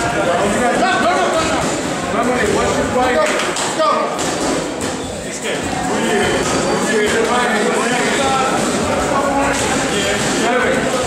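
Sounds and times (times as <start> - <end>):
background voices in a gym: 0.0 - 11.0.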